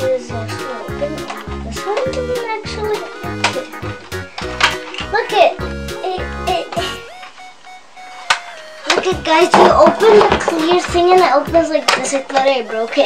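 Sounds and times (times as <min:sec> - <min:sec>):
child's voice: 0:00.0 - 0:03.7, 0:05.1 - 0:07.0, 0:08.8 - 0:13.0
music with bouncy bass beat: 0:00.0 - 0:11.7.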